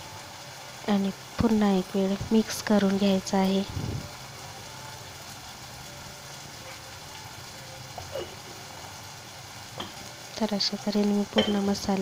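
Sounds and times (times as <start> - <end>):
food sizzling in pan: 0.0 - 12.0.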